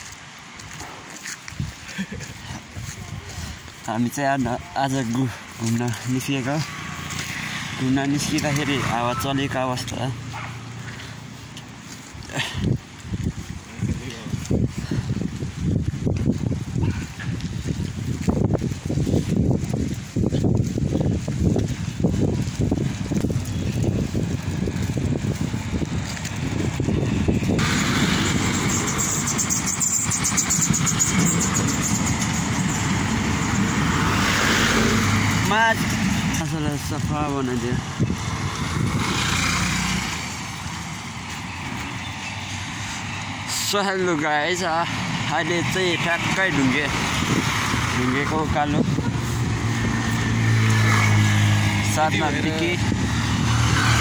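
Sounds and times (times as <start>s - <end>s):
road traffic rumble: 0.0s - 54.0s
steady rushing hiss: 22.6s - 50.7s.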